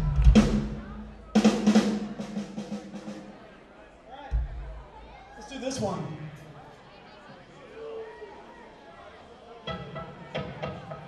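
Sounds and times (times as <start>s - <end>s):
kick drum thumps: 4.3s - 4.7s.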